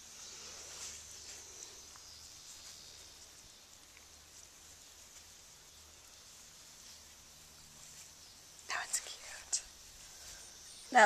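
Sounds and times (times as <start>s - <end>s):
person whispering: 8.7s - 9.7s.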